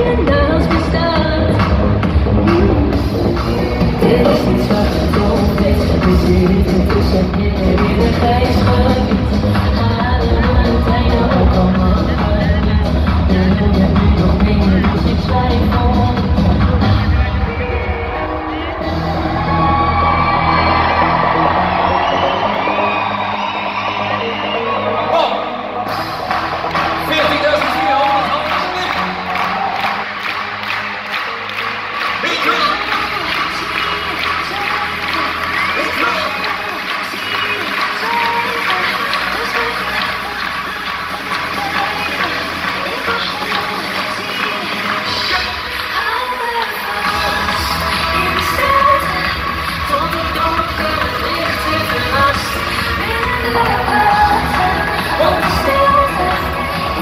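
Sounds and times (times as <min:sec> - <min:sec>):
female lead vocal: 0:00.0 - 0:20.0, 0:32.6 - 0:57.0
dance-pop song over a pa: 0:00.0 - 0:57.0
crowd cheering: 0:17.3 - 0:57.0.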